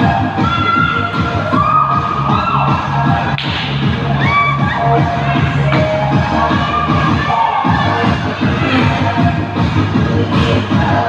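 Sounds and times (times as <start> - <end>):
loud dance music: 0.0 - 11.0
people shouting and cheering: 0.0 - 11.0.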